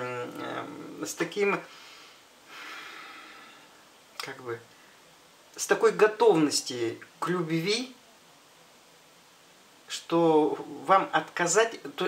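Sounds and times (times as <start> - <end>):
person breathing in: 1.7 - 3.8.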